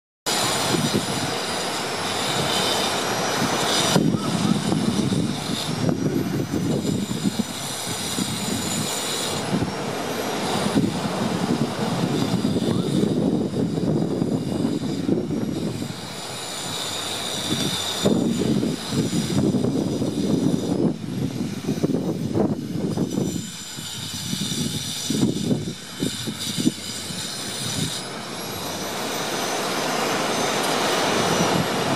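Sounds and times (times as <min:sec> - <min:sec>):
ocean surf breaking on beach: 0:00.3 - 0:22.6, 0:25.7 - 0:31.9
gusty low rumble: 0:03.2 - 0:16.1, 0:17.4 - 0:29.2.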